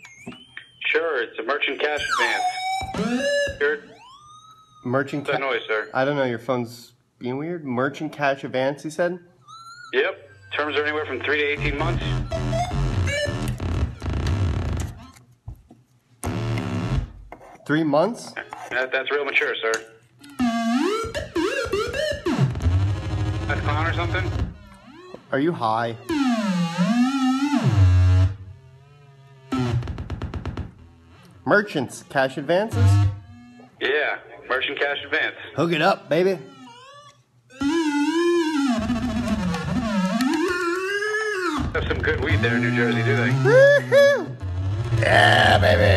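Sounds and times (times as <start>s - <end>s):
buzzy synthesizer tones: 10.0s - 15.2s, 20.4s - 33.8s, 35.6s - 45.9s
wavering synthesizer tone: 36.4s - 45.4s.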